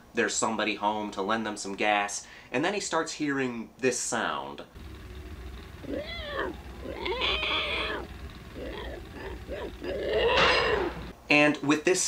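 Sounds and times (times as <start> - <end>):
steady low hum: 4.7 - 11.2
pig-like squeals: 5.8 - 11.1.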